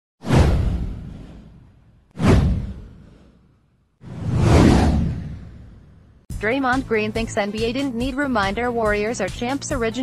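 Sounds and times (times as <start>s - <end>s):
whoosh: 0.2s - 6.3s
deep low boom: 0.3s - 3.1s, 4.1s - 6.2s.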